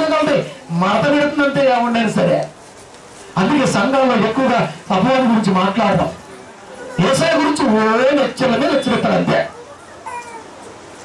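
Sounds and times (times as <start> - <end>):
man's amplified voice: 0.0 - 2.5, 3.3 - 6.3, 6.9 - 9.6.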